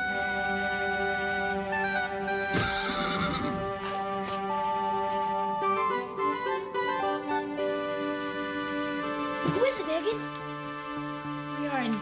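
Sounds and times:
background music: 0:00.0 - 0:12.0
horse whinnying: 0:02.4 - 0:03.8.

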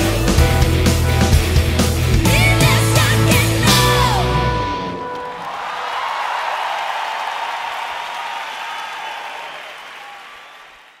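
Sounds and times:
crowd cheering and applauding: 0:02.4 - 0:11.0.

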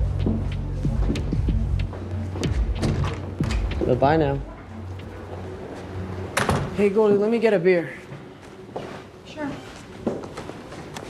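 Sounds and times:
low sustained music score: 0:00.0 - 0:09.2.

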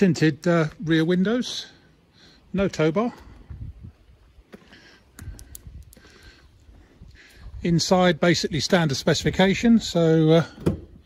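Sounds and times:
faint footsteps: 0:03.1 - 0:07.7
light clicks: 0:05.1 - 0:06.2.

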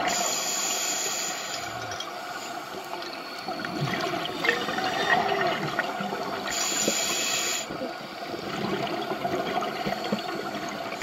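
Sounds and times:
regulator air hiss: 0:00.0 - 0:03.3, 0:06.4 - 0:08.2
exhale bubbling underwater: 0:03.2 - 0:06.7, 0:07.7 - 0:11.0.

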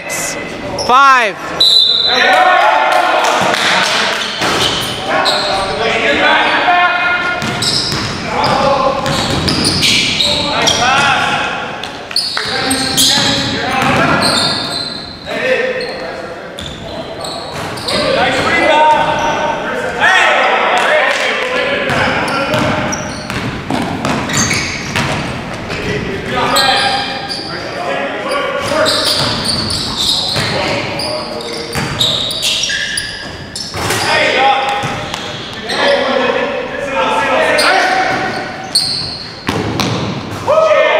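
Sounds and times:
basketball bouncing: 0:07.4 - 0:09.8, 0:21.9 - 0:25.8, 0:39.4 - 0:40.4.

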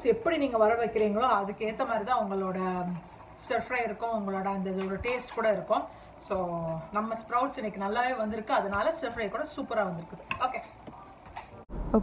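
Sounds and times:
woman talking: 0:00.0 - 0:10.7.

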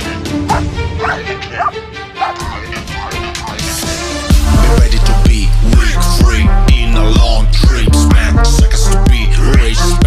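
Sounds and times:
dog barking: 0:00.5 - 0:03.7
background music with a beat: 0:02.2 - 0:10.0.

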